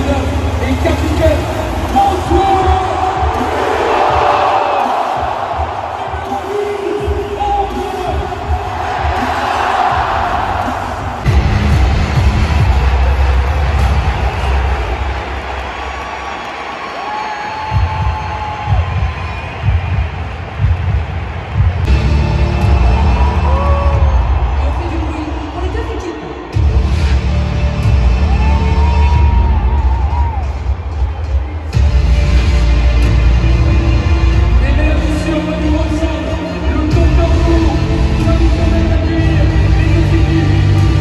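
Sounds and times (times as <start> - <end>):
loud music over sound system: 0.0 - 41.0
stadium crowd cheering: 0.0 - 41.0.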